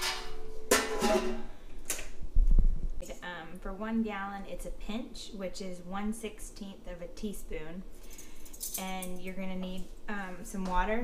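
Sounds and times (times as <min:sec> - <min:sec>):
pot lid clanking and ringing: 0:00.0 - 0:01.5.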